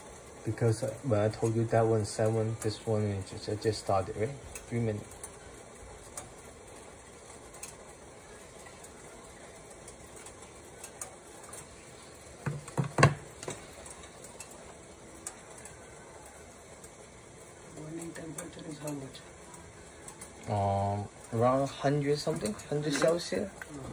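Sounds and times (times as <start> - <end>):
water heating in metal pot: 0.0 - 23.9
knocks from pot: 12.4 - 13.6.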